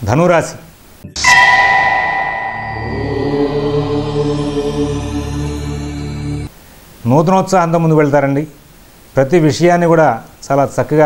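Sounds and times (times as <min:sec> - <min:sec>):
bell ringing: 0:01.2 - 0:05.6.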